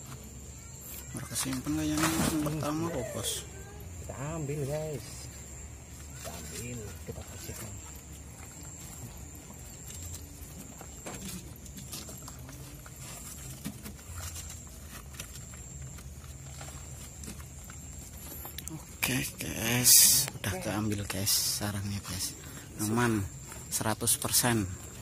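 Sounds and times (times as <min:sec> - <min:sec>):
faint high whine: 0:00.0 - 0:25.0
gloved hands rustling and scraping: 0:04.9 - 0:19.0.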